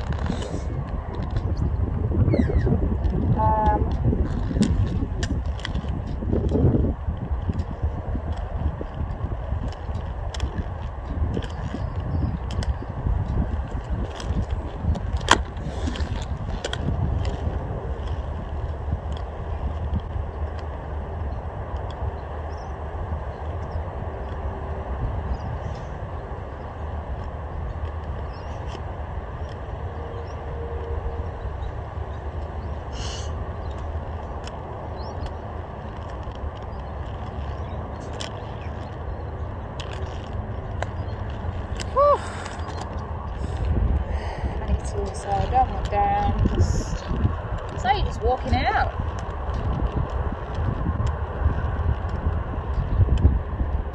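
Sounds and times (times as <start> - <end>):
roller skate wheels rolling: 0.0 - 53.9.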